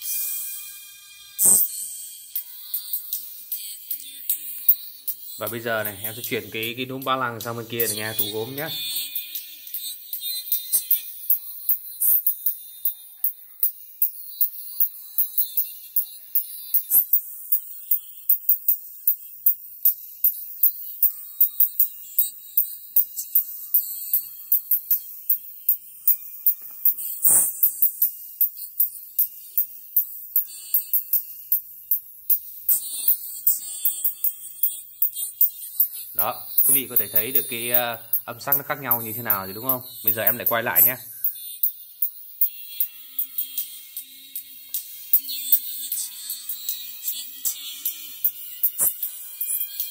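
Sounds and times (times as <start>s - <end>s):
thin treble-only music: 0.0s - 49.9s.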